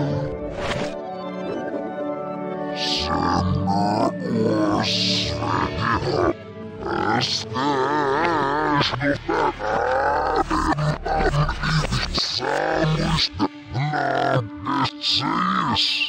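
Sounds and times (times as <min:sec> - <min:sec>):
slowed reversed voices and music: 0:00.0 - 0:01.0, 0:01.6 - 0:16.0.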